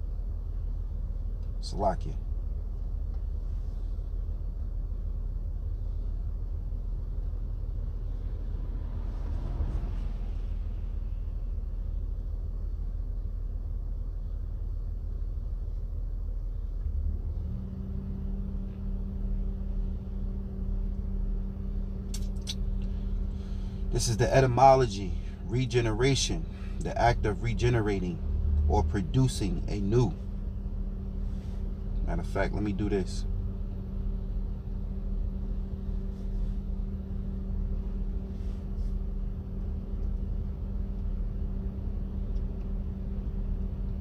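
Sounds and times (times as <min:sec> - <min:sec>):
car idling rumble: 0:00.0 - 0:44.0
steady hum: 0:00.0 - 0:44.0.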